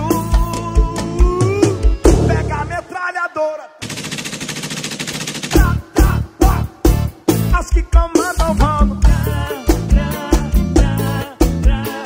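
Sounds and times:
song with heavy beat: 0.0 - 3.0, 5.5 - 12.0
person singing: 0.0 - 3.5, 5.5 - 12.0
machine-gun fire: 3.8 - 6.2.

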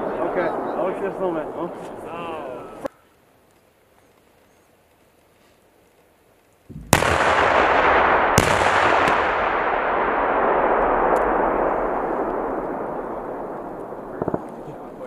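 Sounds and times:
explosive blast: 6.7 - 15.0
long explosion rumble: 6.7 - 15.0
second explosive crack: 6.7 - 15.0.

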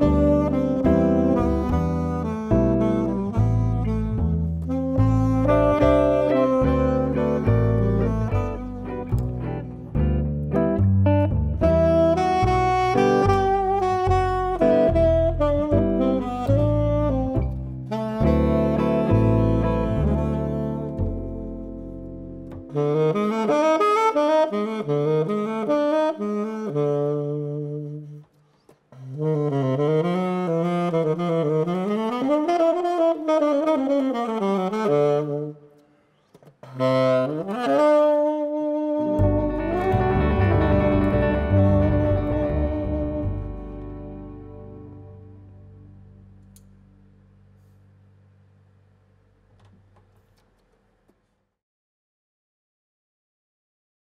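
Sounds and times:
double bass line: 0.0 - 23.7, 29.0 - 35.6, 38.9 - 48.0
tenor saxophone jazz line: 0.0 - 35.8, 36.6 - 46.2.

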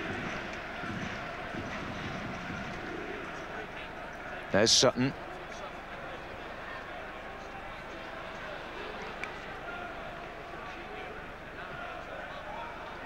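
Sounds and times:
stadium crowd murmur: 0.0 - 13.0.

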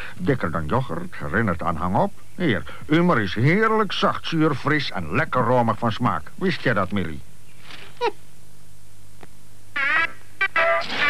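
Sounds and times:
faint steady hum: 0.0 - 10.8.

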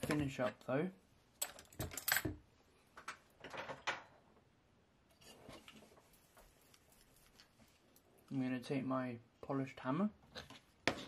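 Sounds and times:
tools knocking and clinking: 1.4 - 2.4.

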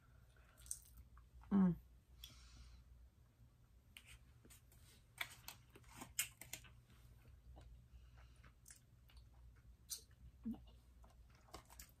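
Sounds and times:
mouth clicks and crunches: 5.2 - 6.8, 8.4 - 12.0.

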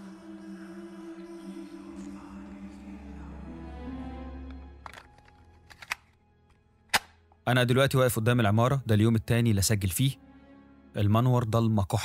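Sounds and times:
background music: 0.0 - 12.0
sharp click: 6.9 - 7.2.

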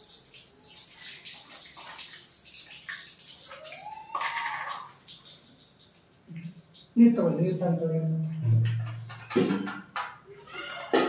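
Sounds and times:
milk splashing over stone: 0.0 - 7.0.

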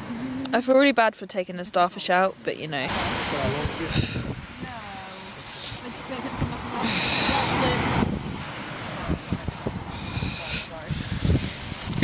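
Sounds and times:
wind buffeting microphone: 1.7 - 12.0
surf breaking on shore: 1.9 - 12.0.

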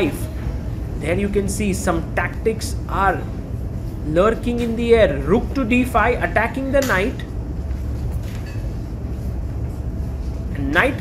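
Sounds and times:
low rumble of hall noise: 0.0 - 11.0.

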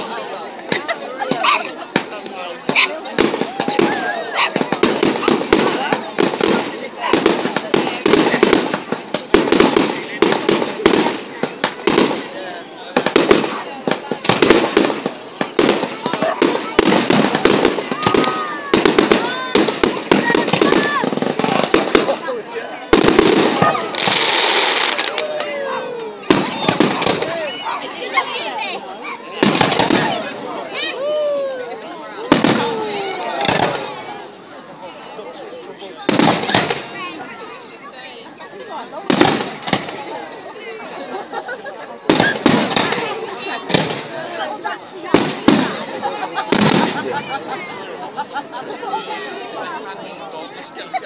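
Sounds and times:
fireworks bangs and crackles: 0.0 - 51.0.

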